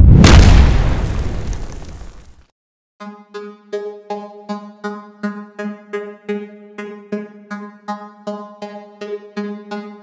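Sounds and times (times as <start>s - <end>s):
deep explosion-like boom: 0.0s - 2.4s.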